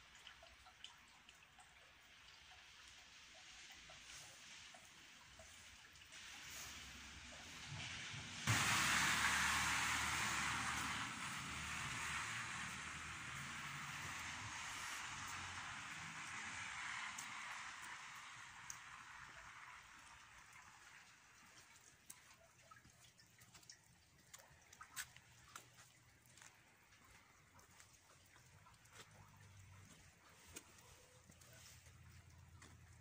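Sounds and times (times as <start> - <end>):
street hiss: 4.0 - 21.3.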